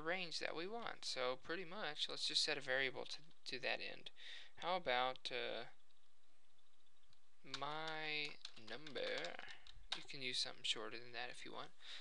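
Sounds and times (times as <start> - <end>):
man speaking: 0.0 - 5.8, 7.4 - 12.0
computer keyboard typing: 5.8 - 10.3.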